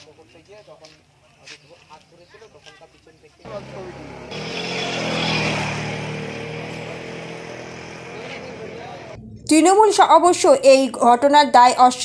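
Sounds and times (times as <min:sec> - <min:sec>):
motor vehicle passing: 0:03.4 - 0:10.0.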